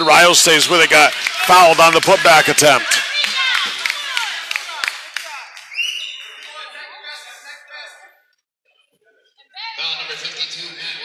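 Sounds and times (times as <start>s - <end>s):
people talking in a gymnasium: 0.0s - 11.0s.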